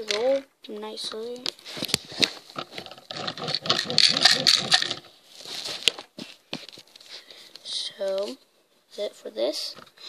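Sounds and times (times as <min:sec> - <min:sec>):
plastic toy truck rattling and scraping: 0:00.0 - 0:06.1.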